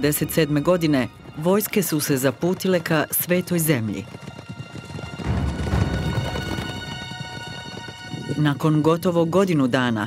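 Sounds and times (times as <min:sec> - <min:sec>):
hoofbeats of horses: 0:00.0 - 0:10.0
music with long held notes: 0:04.4 - 0:09.0.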